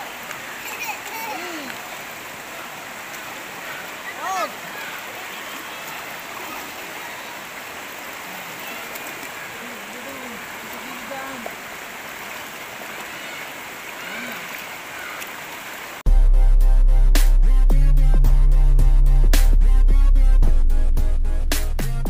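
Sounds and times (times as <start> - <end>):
water rushing over rocks: 0.0 - 16.0
electronic music with heavy bass: 16.1 - 22.0.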